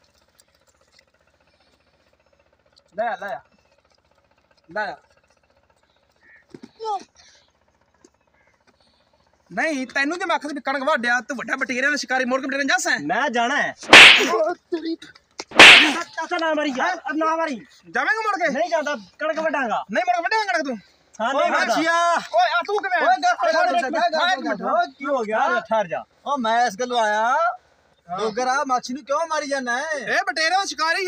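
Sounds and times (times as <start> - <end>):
sharp hits with swishing tail: 13.8 - 14.4, 15.5 - 16.0.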